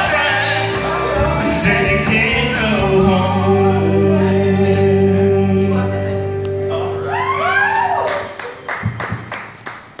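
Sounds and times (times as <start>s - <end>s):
person singing karaoke: 0.0s - 9.2s
hands clapping: 7.8s - 10.0s.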